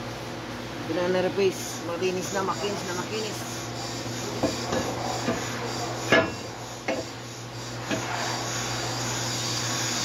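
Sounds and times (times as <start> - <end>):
metal scraping: 2.3 - 10.0
sharp metal clunks: 6.1 - 7.1.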